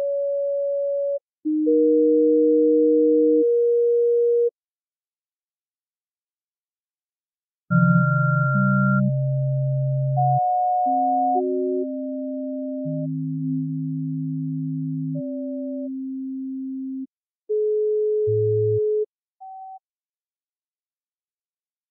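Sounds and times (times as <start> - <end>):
electronic sine-wave tones: 7.7 - 17.0.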